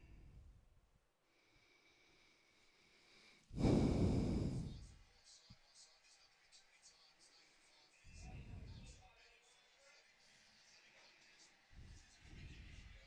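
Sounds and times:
person exhaling into microphone: 3.6s - 4.8s.

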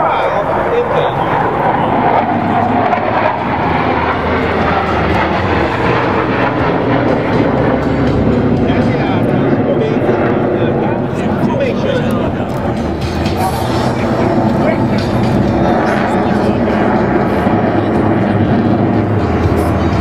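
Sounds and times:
jet engines roaring: 0.0s - 20.0s.

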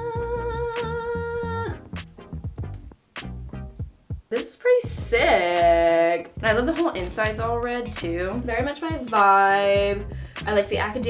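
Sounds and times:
background music with plucked rhythm: 0.0s - 11.0s.

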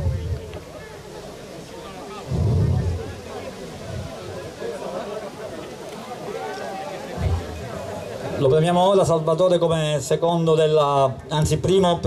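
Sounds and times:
crowd murmur: 0.0s - 10.2s
low thuds: 2.3s - 3.2s, 3.8s - 4.2s, 7.2s - 7.9s.

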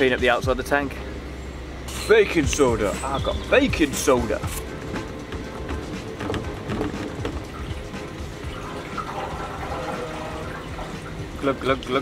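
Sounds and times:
water glugging into metal tank: 6.1s - 12.0s.

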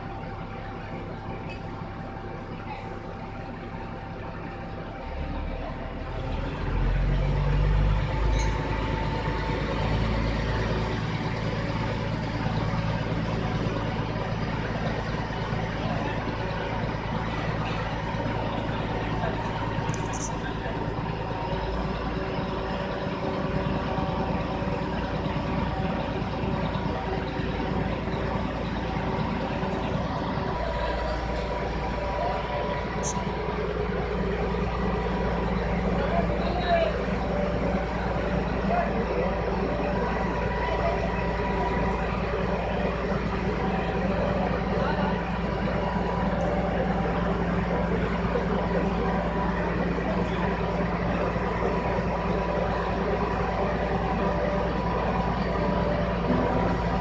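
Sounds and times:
crane diesel engine running: 0.0s - 57.0s.

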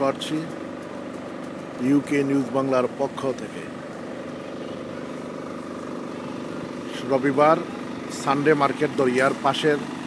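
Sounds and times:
motor humming steadily: 0.0s - 10.0s.

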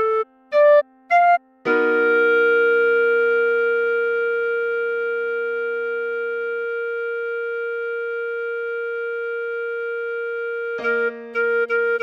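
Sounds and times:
clarinet long note: 0.0s - 12.0s.

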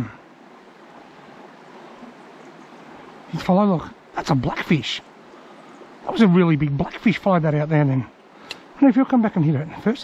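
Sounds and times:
creek water flowing: 0.0s - 10.0s.

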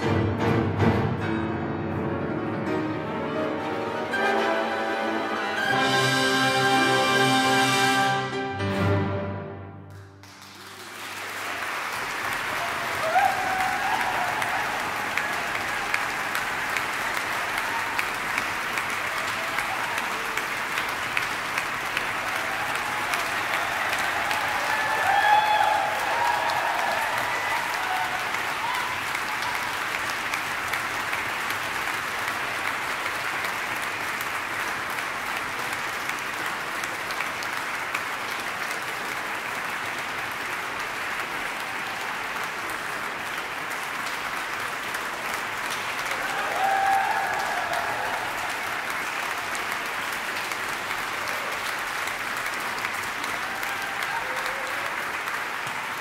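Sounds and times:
audience applauding: 9.9s - 56.0s.

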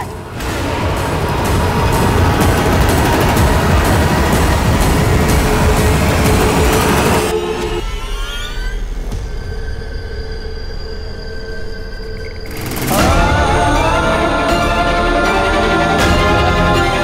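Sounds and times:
dramatic orchestral score: 0.0s - 17.0s
loud rushing whoosh: 0.1s - 7.8s.

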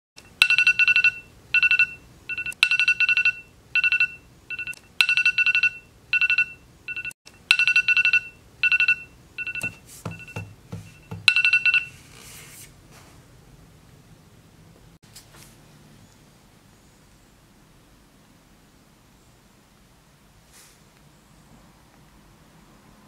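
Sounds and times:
phone alarm beeping: 0.2s - 12.0s.

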